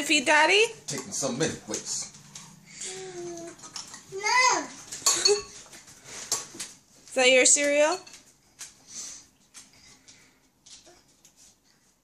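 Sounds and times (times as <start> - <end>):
toddler babbling: 2.8 - 4.8.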